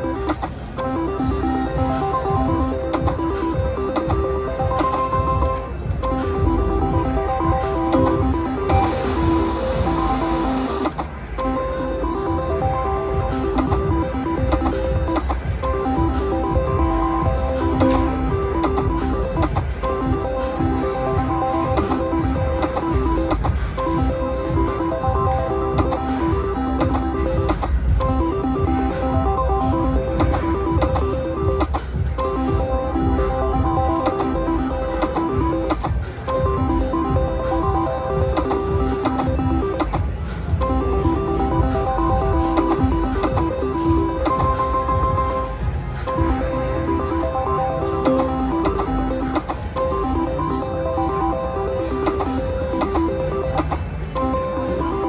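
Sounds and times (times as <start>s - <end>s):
low casino din: 0.0s - 55.0s
slot machine beeping tune: 0.0s - 55.0s.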